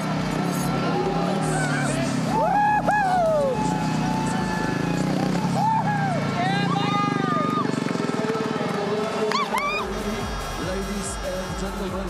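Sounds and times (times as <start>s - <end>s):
people whooping and shouting: 0.7s - 7.9s, 9.2s - 11.9s.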